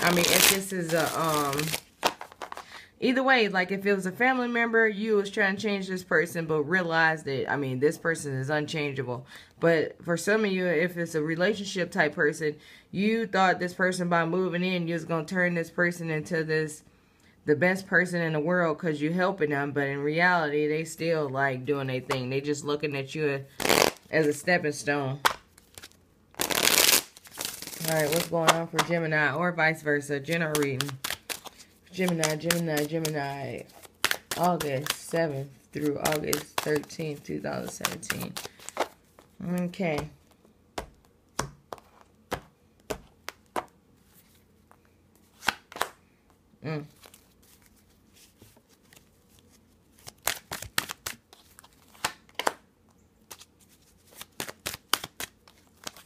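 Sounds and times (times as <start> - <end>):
cards riffle-shuffled: 0.0 - 2.8, 23.6 - 24.3, 25.2 - 29.0, 30.2 - 46.0, 46.8 - 52.6, 53.3 - 56.0.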